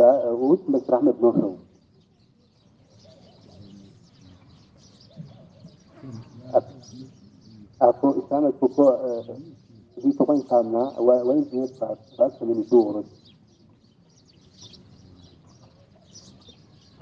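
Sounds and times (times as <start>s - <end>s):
man talking: 0.0s - 1.7s, 6.0s - 13.2s
small birds chirping: 0.0s - 17.0s.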